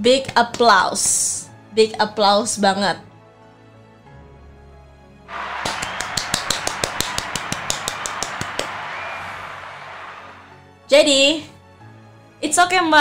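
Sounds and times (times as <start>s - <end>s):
crowd applause: 5.3s - 10.6s.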